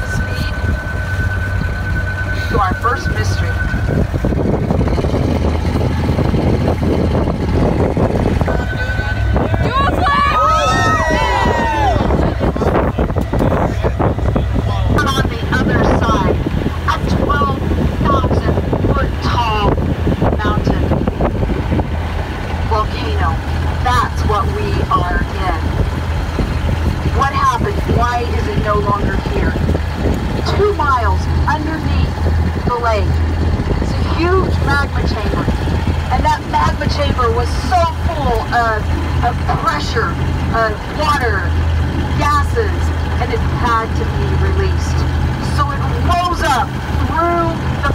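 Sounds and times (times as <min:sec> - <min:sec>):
boat engine humming: 0:00.0 - 0:47.9
guide talking: 0:02.2 - 0:04.4, 0:08.2 - 0:21.0, 0:30.4 - 0:47.9.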